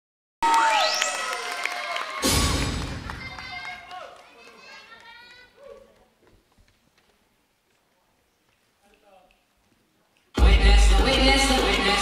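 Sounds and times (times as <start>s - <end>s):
electronic music over loudspeakers: 0.5s - 1.4s, 10.4s - 12.0s
deep bass boom: 10.4s - 11.6s.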